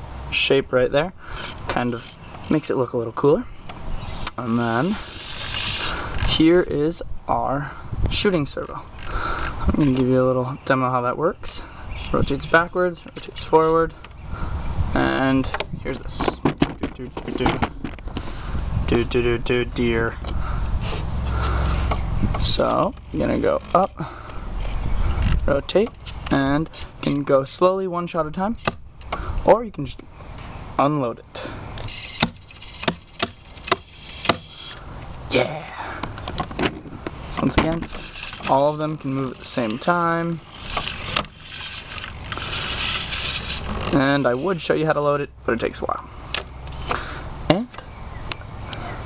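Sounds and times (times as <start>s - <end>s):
servos buzzing: 3.6s - 6.4s, 31.8s - 34.9s, 37.6s - 44.5s.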